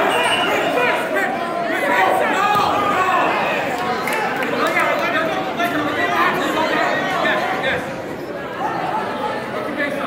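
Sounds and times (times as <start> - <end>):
crowd chatter in a gymnasium: 0.0 - 10.0.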